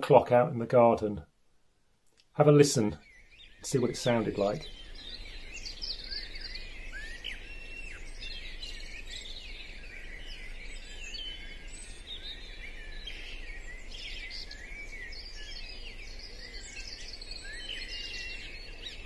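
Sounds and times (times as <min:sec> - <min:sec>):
songbirds singing: 0:00.0 - 0:19.0.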